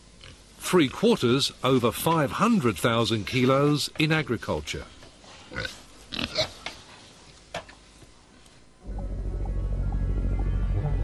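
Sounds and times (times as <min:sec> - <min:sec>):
pigs grunting: 0:05.5 - 0:06.6.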